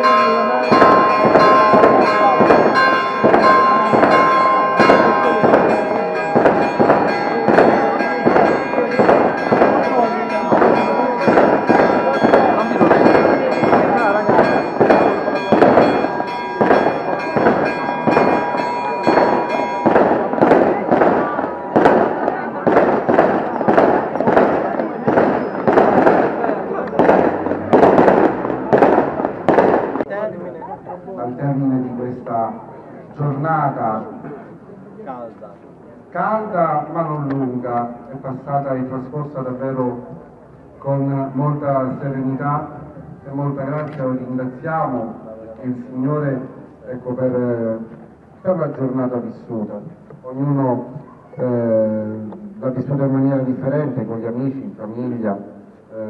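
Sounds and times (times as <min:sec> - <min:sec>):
church bells ringing: 0:00.0 - 0:30.1
firework bangs: 0:00.0 - 0:30.1.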